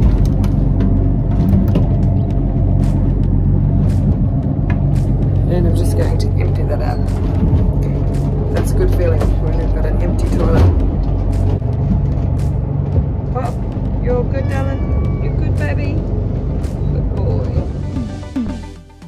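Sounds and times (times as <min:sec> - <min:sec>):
knocks and clatters: 0:00.0 - 0:05.4, 0:06.8 - 0:14.1
boat engines droning: 0:00.0 - 0:18.6.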